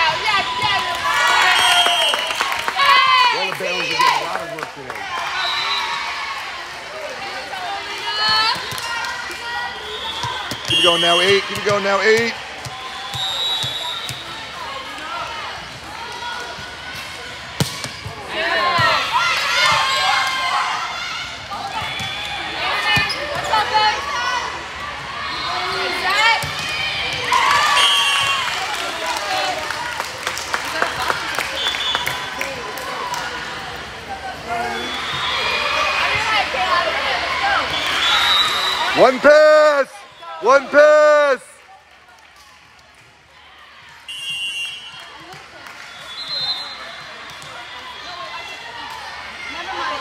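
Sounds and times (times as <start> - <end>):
spectators shouting and cheering: 0.0 - 50.0
volleyball strikes: 17.0 - 19.9
sneakers squeaking on court: 22.8 - 23.7.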